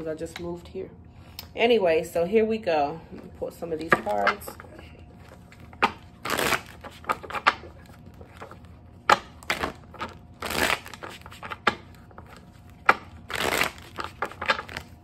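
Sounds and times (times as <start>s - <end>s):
deck of cards shuffling: 5.2s - 15.0s.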